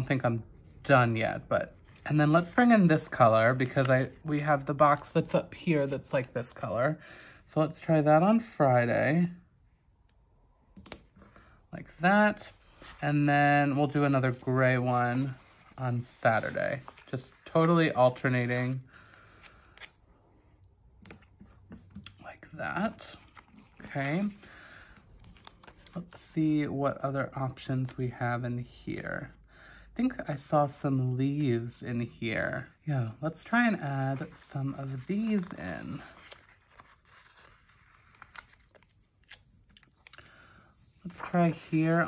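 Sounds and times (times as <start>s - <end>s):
soft paper rustles: 0.6s - 7.0s, 10.7s - 20.1s, 20.9s - 28.2s, 33.3s - 42.0s
pages turning: 1.2s - 6.7s, 12.2s - 20.1s, 21.0s - 26.3s, 33.7s - 42.0s
paper sticker peeling and rustling: 1.8s - 6.4s, 25.1s - 26.0s, 34.1s - 41.9s.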